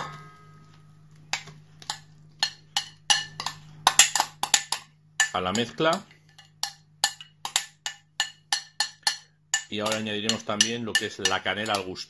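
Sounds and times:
steady low hum: 0.0 - 12.0
knocks and clicks on a bowl: 1.3 - 12.0.

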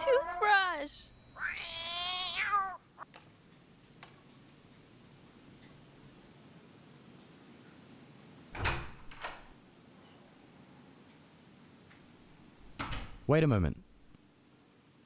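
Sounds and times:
woman wailing: 0.0 - 0.9.

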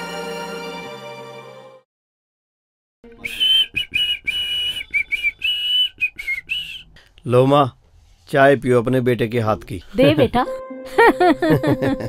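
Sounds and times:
person whistling a cheerful tune: 3.1 - 6.8.

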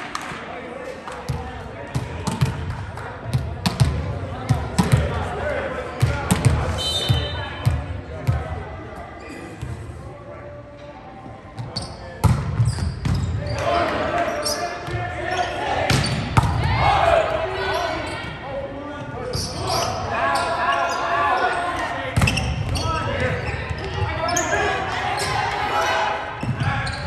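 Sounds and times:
players and spectators chattering: 0.0 - 27.0.

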